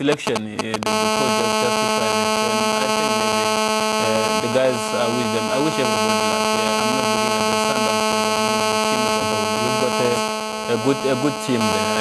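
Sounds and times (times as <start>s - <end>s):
steady electrical buzz: 0.0s - 12.0s.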